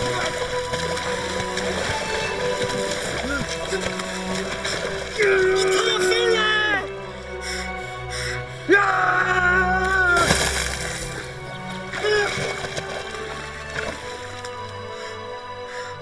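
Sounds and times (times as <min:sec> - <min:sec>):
dramatic background score: 0:00.0 - 0:16.0
man yelling loudly: 0:05.3 - 0:06.9, 0:08.7 - 0:10.3.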